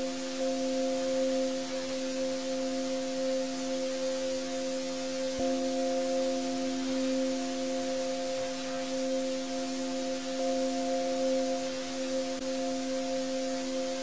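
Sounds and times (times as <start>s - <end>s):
ambient drone music: 0.0s - 14.0s
soft hiss: 0.0s - 14.0s.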